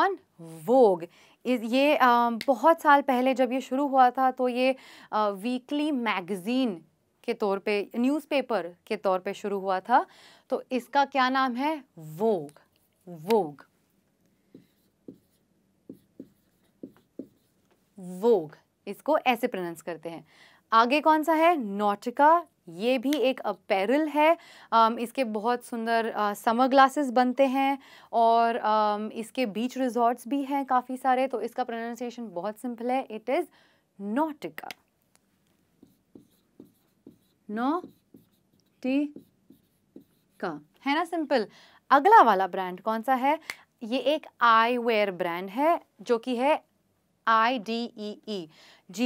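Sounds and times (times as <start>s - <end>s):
marker writing on whiteboard: 14.5s - 17.8s, 35.7s - 40.7s.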